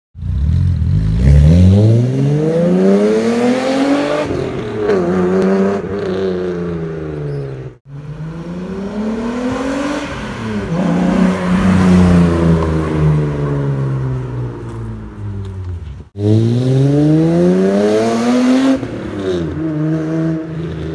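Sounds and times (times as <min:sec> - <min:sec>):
car engine revving hard: 0:01.1 - 0:06.6, 0:16.2 - 0:20.6
car passing: 0:07.9 - 0:20.9.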